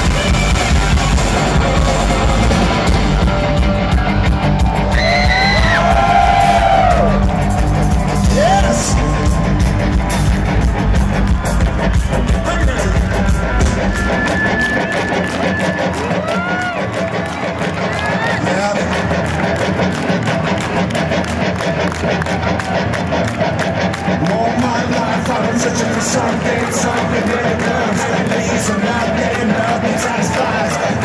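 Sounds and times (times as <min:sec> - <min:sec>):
live rock band playing: 0:00.0 - 0:26.3
crowd voices: 0:00.0 - 0:31.0.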